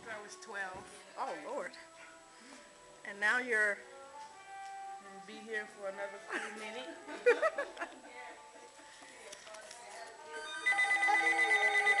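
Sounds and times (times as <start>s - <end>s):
loud ringing trill: 10.4s - 12.0s.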